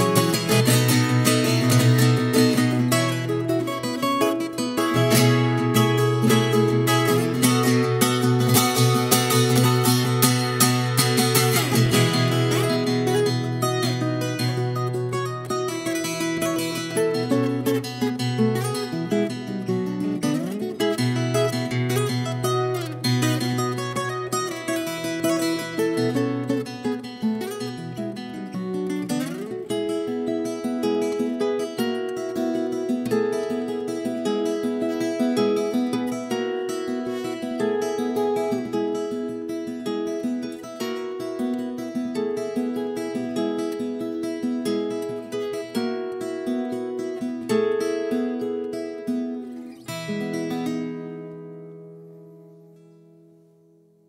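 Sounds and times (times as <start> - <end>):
fingerstyle guitar melody: 0.0 - 54.0.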